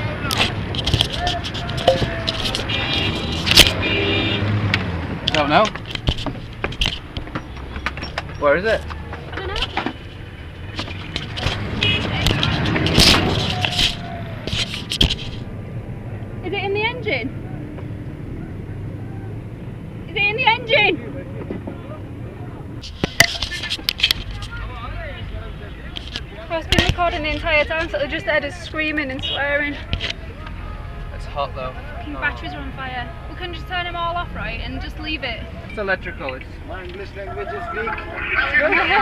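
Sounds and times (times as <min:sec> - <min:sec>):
faint voices: 0:00.0 - 0:03.4, 0:11.1 - 0:19.6, 0:20.2 - 0:39.0
knocks and clatter: 0:04.7 - 0:10.0, 0:10.6 - 0:15.5.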